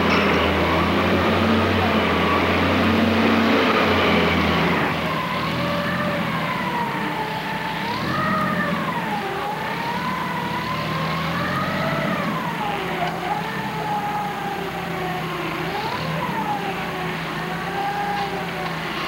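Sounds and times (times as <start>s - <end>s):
vehicle engine running: 0.0s - 19.0s.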